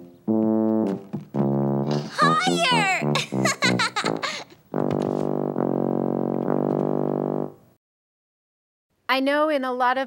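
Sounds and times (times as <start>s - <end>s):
tuba playing low notes: 0.0s - 2.2s, 3.0s - 7.8s
child's voice: 2.1s - 3.0s.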